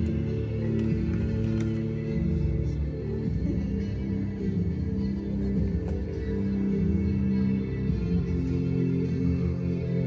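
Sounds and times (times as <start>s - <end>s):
slow ambient electric band music: 0.0s - 10.0s.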